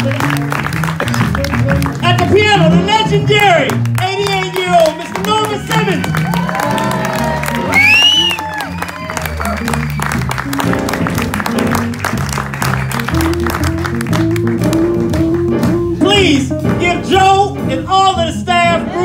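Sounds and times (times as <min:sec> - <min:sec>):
jazz band playing: 0:00.0 - 0:19.0.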